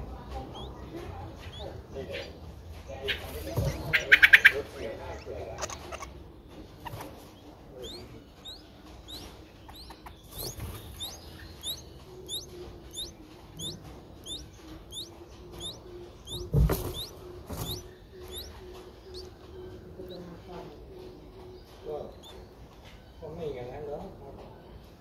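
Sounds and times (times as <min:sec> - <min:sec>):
nestlings begging chirps: 0:00.0 - 0:23.6.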